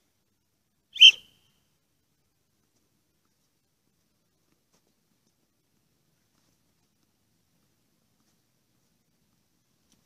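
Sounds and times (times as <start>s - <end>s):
high-pitched whistle-like blip: 1.0s - 1.3s.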